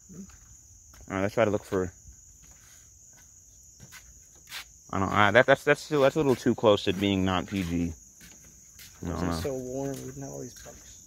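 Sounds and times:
crickets chirring: 0.0 - 11.0
person speaking: 5.0 - 8.0, 8.9 - 11.0.

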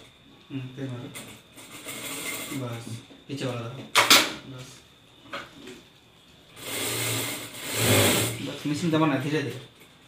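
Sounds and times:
sewing machine stitching: 6.6 - 8.4.

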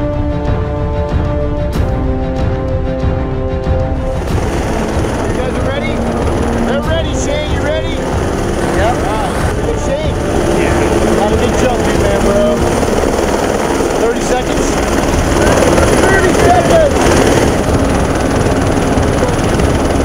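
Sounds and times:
helicopter running: 0.0 - 20.0.

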